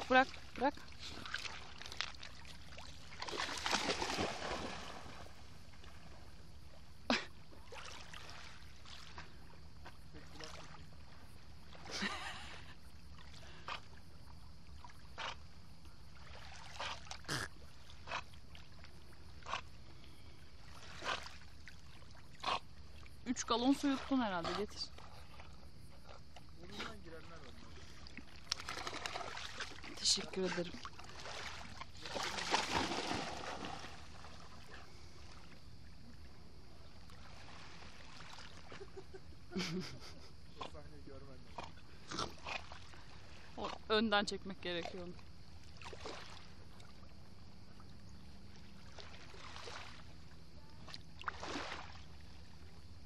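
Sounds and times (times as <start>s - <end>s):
dog splashing through water: 0.0s - 6.2s, 26.1s - 34.7s
splash: 0.0s - 6.4s, 7.1s - 14.0s, 16.1s - 19.6s, 20.6s - 25.6s, 26.7s - 35.6s, 37.0s - 39.0s, 41.5s - 43.8s, 44.7s - 47.1s, 48.5s - 52.7s
water sloshing: 0.0s - 39.4s, 40.3s - 53.0s.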